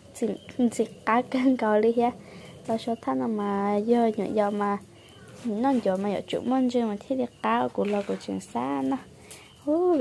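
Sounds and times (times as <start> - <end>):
person talking: 5.4 - 10.0.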